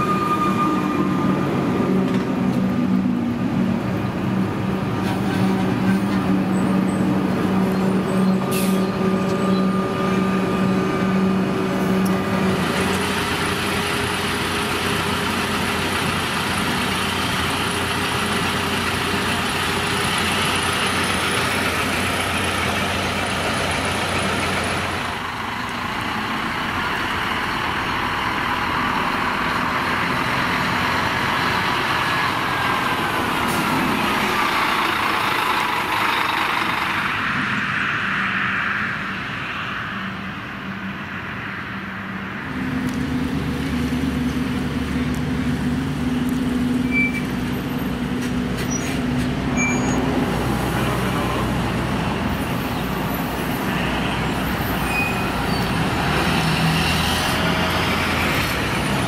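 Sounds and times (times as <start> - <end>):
bus engine idling: 0.0 - 38.4, 39.0 - 59.0
buses driving past: 0.0 - 59.0.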